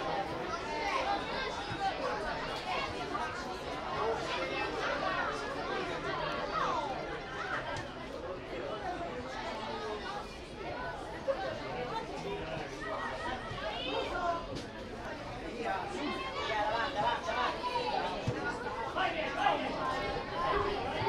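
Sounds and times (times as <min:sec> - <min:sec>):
crowd chattering: 0:00.0 - 0:21.0.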